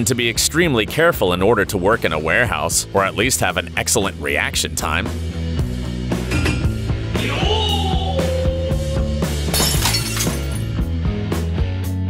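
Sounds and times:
background music with drum beat: 0:04.9 - 0:09.6.

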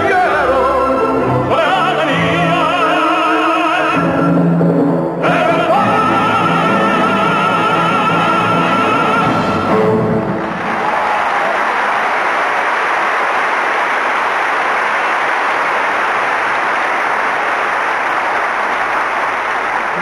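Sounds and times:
audience applauding: 0:10.3 - 0:20.0.

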